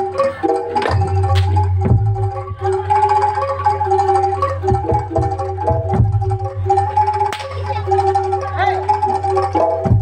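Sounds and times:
metallophones playing melody: 0:00.0 - 0:10.0.

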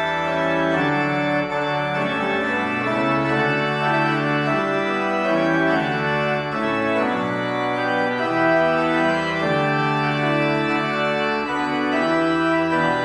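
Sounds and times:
church organ playing hymn: 0:00.0 - 0:13.0.

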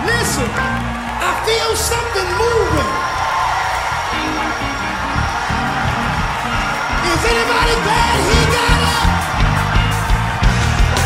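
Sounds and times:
live gospel band music: 0:00.0 - 0:11.0
moving bass line: 0:04.0 - 0:11.0.

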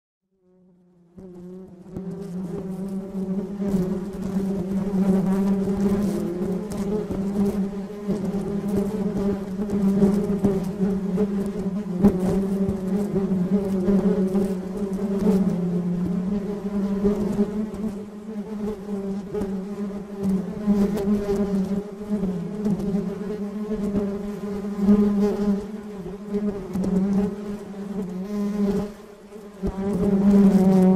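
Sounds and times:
honeybees buzzing: 0:01.2 - 0:30.9.

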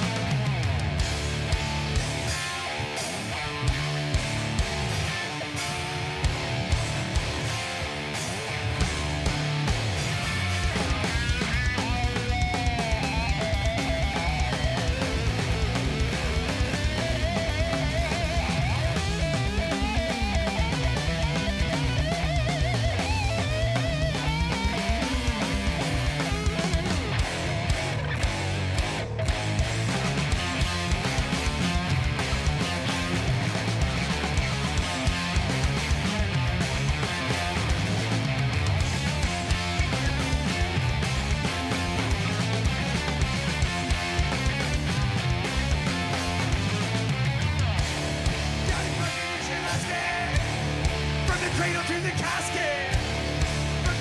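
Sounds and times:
distorted electric guitar: 0:00.0 - 0:54.0
drums: 0:00.0 - 0:54.0
electric bass: 0:00.0 - 0:54.0
melodic guitar line with bends: 0:00.0 - 0:54.0.

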